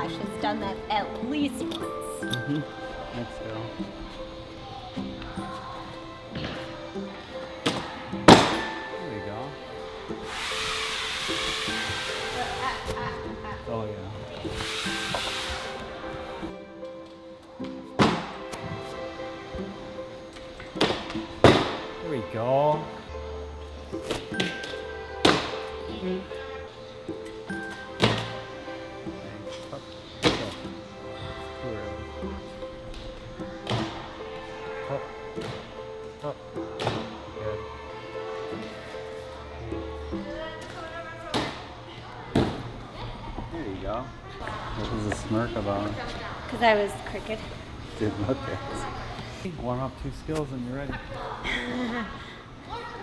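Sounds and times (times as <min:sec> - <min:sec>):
background music: 0:00.0 - 0:53.0
hiss: 0:10.2 - 0:12.9, 0:14.5 - 0:16.3.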